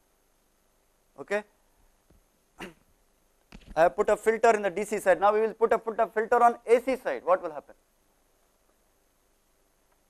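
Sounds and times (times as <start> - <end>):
man lecturing: 1.2 - 1.5, 3.7 - 7.8.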